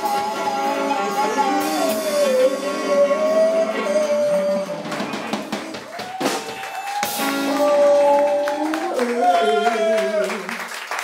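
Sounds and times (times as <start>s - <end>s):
drum kit: 0.0s - 10.2s
electric guitars: 0.0s - 10.4s.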